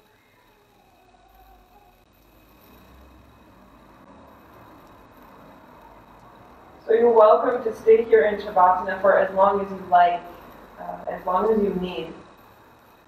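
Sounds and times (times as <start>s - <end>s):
faint high hum: 0.0s - 13.0s.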